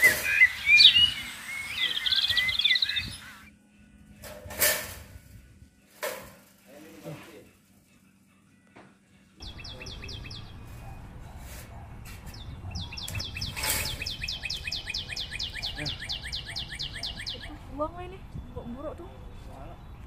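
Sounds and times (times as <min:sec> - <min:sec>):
songbird whistling: 0:00.0 - 0:03.5, 0:09.4 - 0:11.0, 0:12.3 - 0:17.8.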